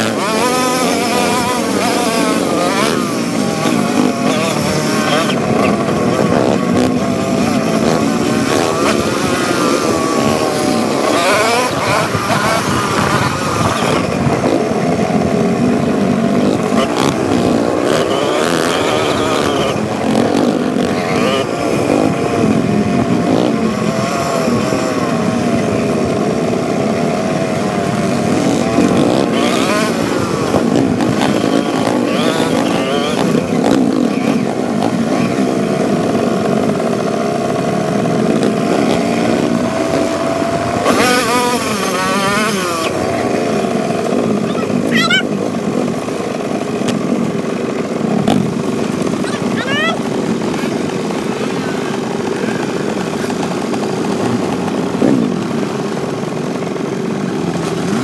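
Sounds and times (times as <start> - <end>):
dirt bike engines revving: 0.0 - 58.0
rush of noise: 0.0 - 58.0.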